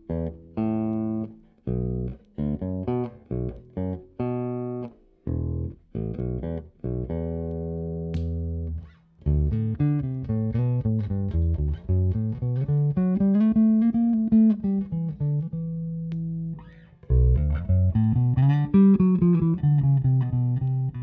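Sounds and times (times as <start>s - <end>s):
electric bass plucked: 0.0s - 21.0s.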